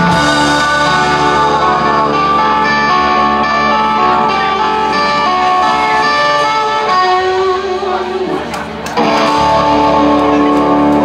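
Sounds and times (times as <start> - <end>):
electric guitar chord: 0.0 - 11.0
live rock band: 0.0 - 11.0.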